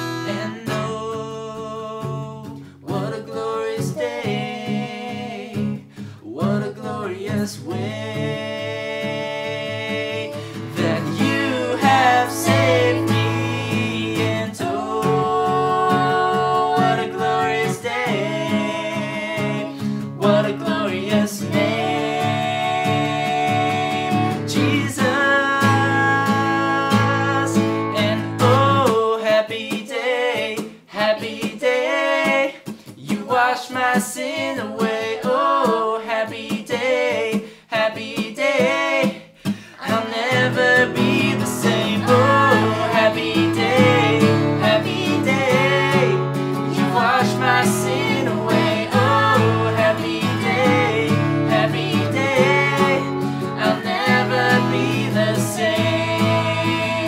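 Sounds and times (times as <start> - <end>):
man and woman singing: 0.0 - 57.0
strummed acoustic guitar: 0.0 - 57.0.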